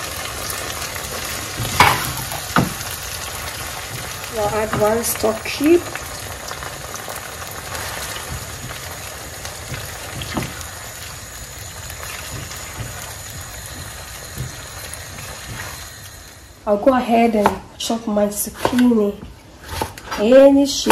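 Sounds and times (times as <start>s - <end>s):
sauce sizzling in a frying pan: 0.0s - 18.5s
spatula stirring: 0.4s - 16.2s.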